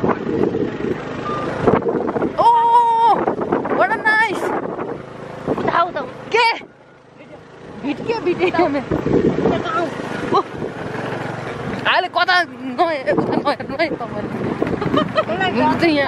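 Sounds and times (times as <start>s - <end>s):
vehicle engine running: 0.0s - 16.0s
voices talking and calling out: 0.6s - 16.0s.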